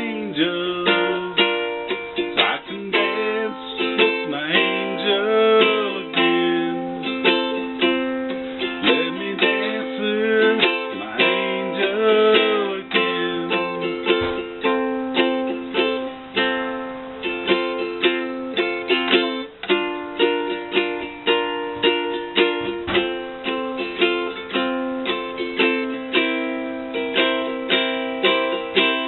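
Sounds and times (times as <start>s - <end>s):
ukulele strummed in waltz time: 0.0s - 29.0s.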